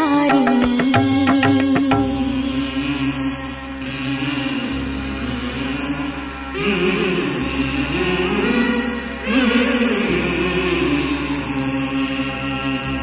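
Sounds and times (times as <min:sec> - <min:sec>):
chant-like held voices: 0:00.0 - 0:13.0
steady drone: 0:00.0 - 0:13.0.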